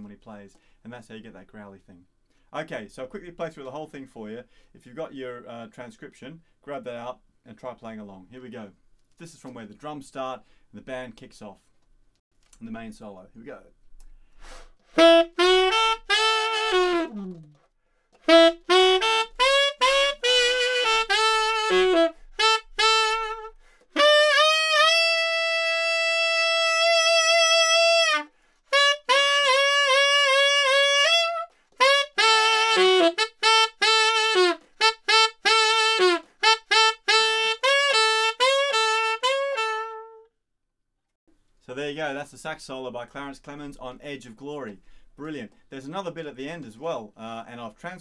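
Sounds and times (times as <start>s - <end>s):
tenor saxophone rock phrases: 14.9s - 17.5s, 18.2s - 40.3s.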